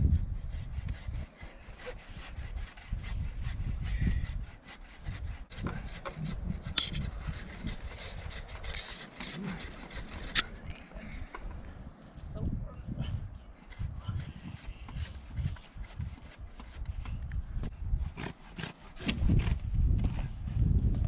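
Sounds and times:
rope scraping against saddle: 0.0 - 10.8, 13.6 - 17.3, 17.9 - 20.4.

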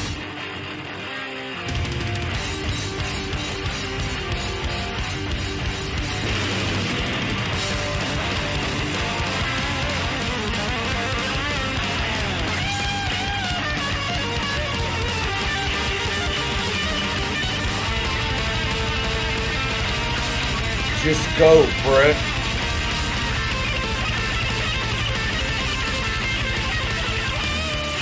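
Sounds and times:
rock music with distorted guitar: 0.0 - 28.0.

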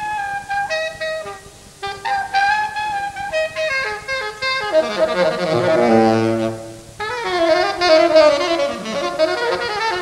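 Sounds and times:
saxophone playing jazz: 0.0 - 10.0.

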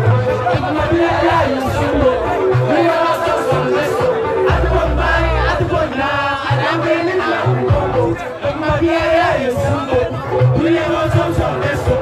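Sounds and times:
crowd noise: 0.0 - 12.0
live music over loudspeakers: 0.0 - 12.0.

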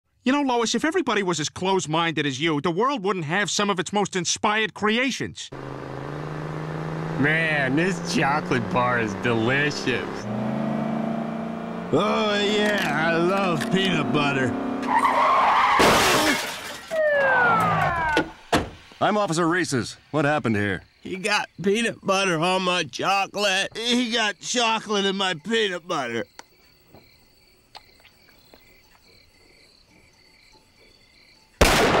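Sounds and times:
car engine running: 5.5 - 15.0
crickets chirping: 5.6 - 14.4, 18.8 - 31.8.

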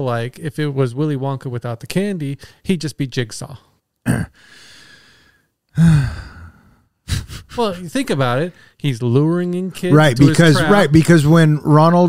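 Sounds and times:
man sighing: 4.1 - 7.6.

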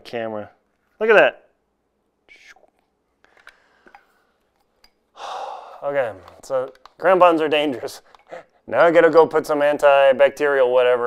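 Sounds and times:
man breathing and sighing: 5.1 - 6.4.

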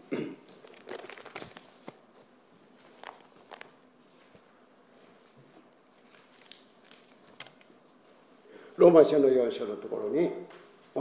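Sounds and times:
pages rustling: 0.5 - 8.0.

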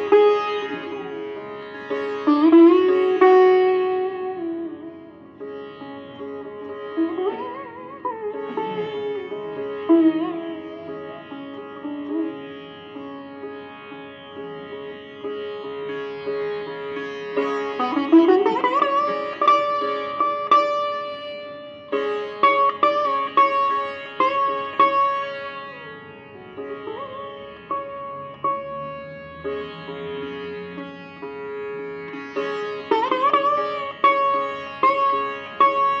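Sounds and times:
sitar playing: 0.0 - 36.0.

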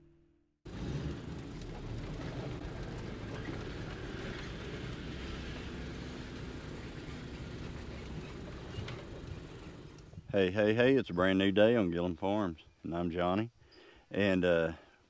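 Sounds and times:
pickup truck engine driving slowly: 0.7 - 10.3.

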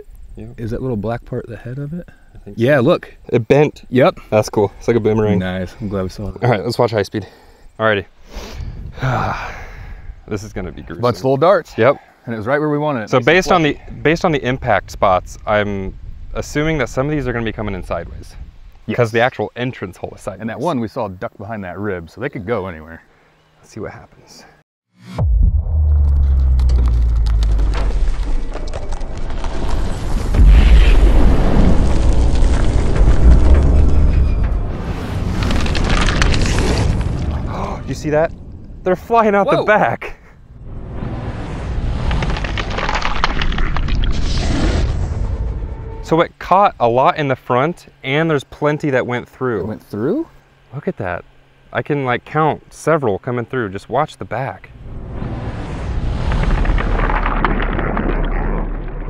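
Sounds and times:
slowed-down shotgun blast boom: 25.1 - 37.5.

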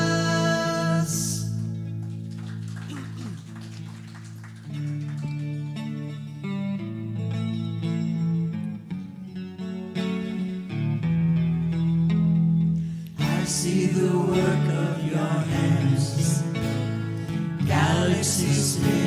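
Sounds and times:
guitars playing held chords: 0.0 - 19.0
picked guitar notes: 4.6 - 19.0.

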